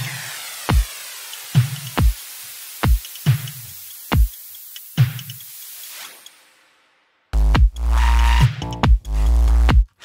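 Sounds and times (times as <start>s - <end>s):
electronic dance track: 0.0s - 10.0s
kick drum with falling pitch: 7.4s - 7.8s, 8.6s - 9.9s.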